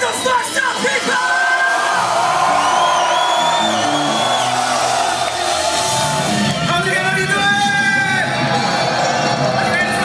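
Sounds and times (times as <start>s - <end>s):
crowd whooping and yelling: 0.0s - 10.0s
live rock band playing: 0.0s - 10.0s.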